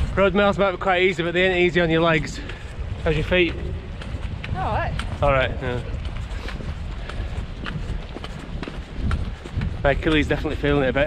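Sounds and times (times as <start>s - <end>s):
footsteps on tarmac: 0.0s - 11.0s
wind buffeting microphone: 0.0s - 11.0s.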